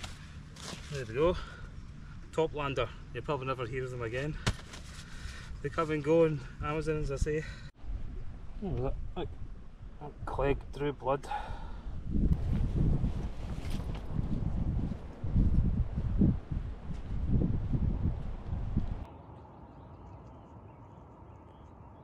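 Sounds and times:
faint outdoor background: 0:00.0 - 0:22.0
wind buffeting microphone: 0:11.5 - 0:19.1.

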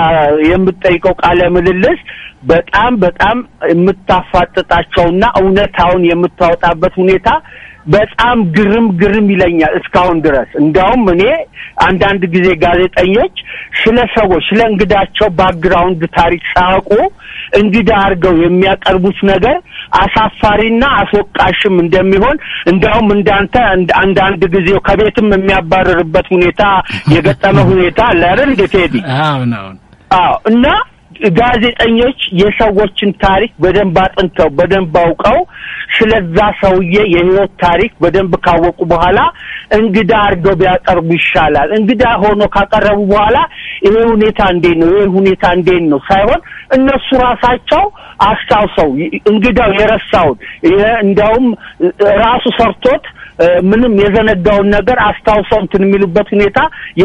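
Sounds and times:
person talking: 0:25.2 - 0:30.8.

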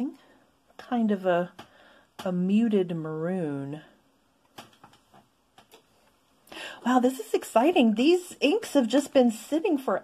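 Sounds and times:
breath: 0:01.6 - 0:02.2, 0:06.5 - 0:06.8.

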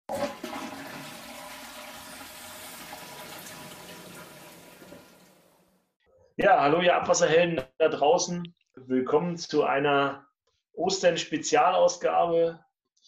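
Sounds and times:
toilet flushing: 0:00.0 - 0:05.9.

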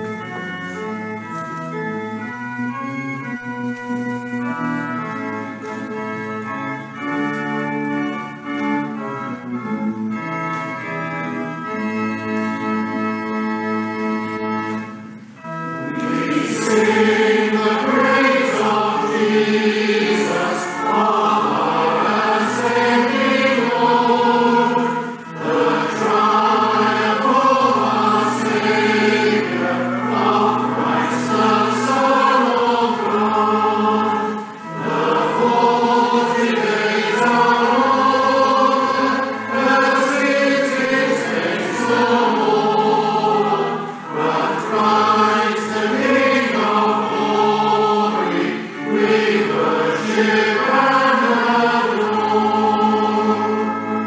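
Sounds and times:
congregation singing a hymn: 0:00.0 - 0:54.0.

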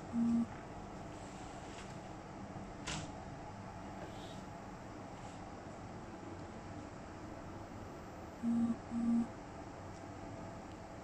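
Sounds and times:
short low hums: 0:08.4 - 0:09.3.

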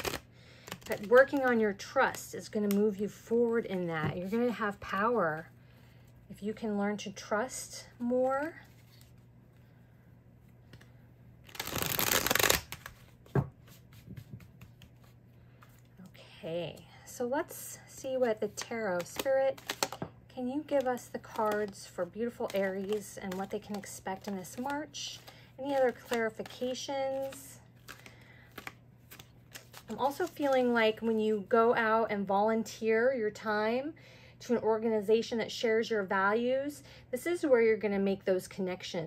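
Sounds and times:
cards being shuffled: 0:00.0 - 0:05.1, 0:08.0 - 0:09.3, 0:10.6 - 0:15.9, 0:18.2 - 0:31.2.

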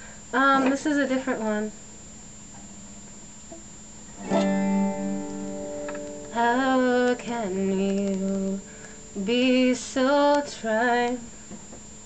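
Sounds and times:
guitar chord ringing: 0:04.2 - 0:09.9.

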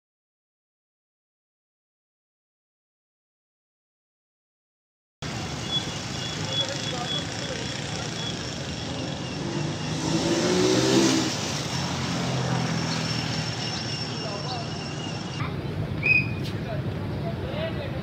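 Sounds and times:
vehicle engine passing: 0:05.2 - 0:16.8
steady traffic hum: 0:05.2 - 0:18.0.

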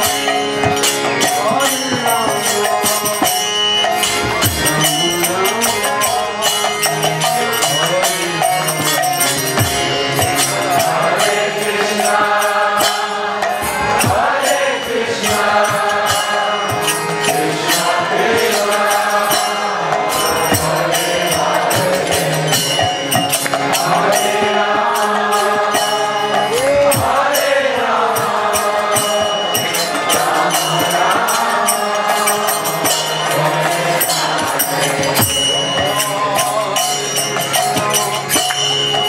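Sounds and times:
drum strokes: 0:00.0 - 0:38.6
hand cymbal strikes: 0:00.0 - 0:39.0
harmonium chords: 0:00.0 - 0:39.0
man chanting: 0:04.6 - 0:09.4.

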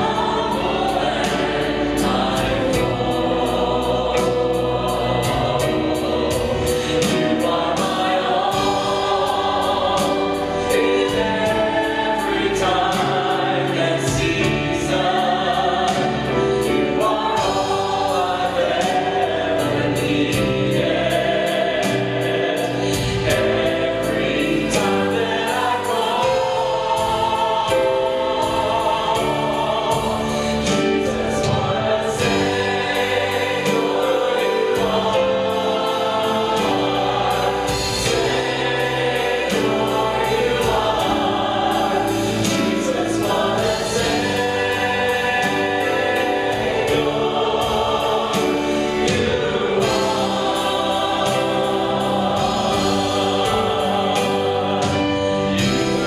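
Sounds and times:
band accompaniment: 0:00.0 - 0:56.0
choir singing gospel song: 0:00.0 - 0:56.0
steady drum beat: 0:00.0 - 0:56.0.

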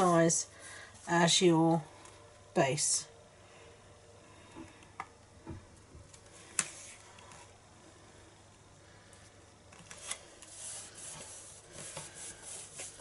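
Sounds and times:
cardstock rustling and rubbing: 0:09.8 - 0:13.0.

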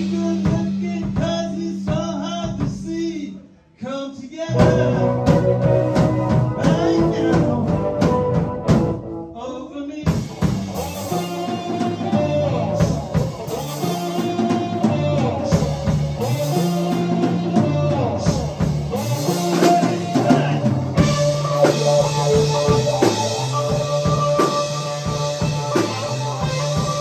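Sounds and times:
drum kit: 0:00.0 - 0:03.4, 0:04.4 - 0:09.4, 0:10.0 - 0:27.0
walking bass line: 0:04.5 - 0:09.3, 0:10.1 - 0:27.0
electric guitar: 0:04.5 - 0:09.4, 0:10.1 - 0:27.0.

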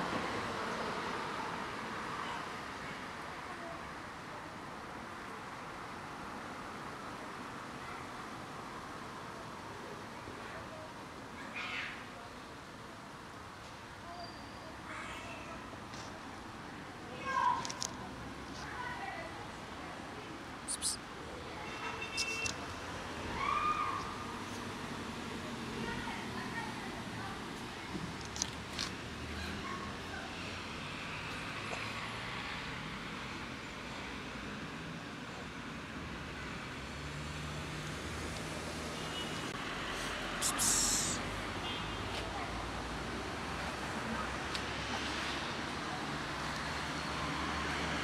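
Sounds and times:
road traffic noise: 0:00.0 - 0:48.0
kitten meowing: 0:20.7 - 0:21.0, 0:40.4 - 0:41.2.

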